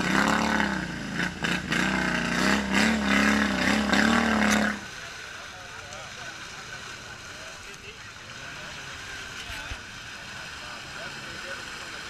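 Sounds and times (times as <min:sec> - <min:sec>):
atv engine running: 0:00.0 - 0:04.9.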